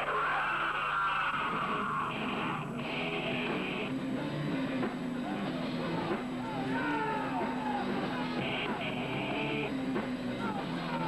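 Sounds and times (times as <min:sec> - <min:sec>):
live metal band playing: 0:00.0 - 0:11.0.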